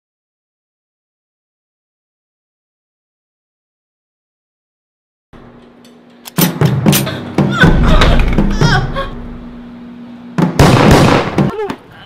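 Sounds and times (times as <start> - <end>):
loud burst of noise: 6.5 - 11.5
sharp knocks and thuds: 10.4 - 11.7.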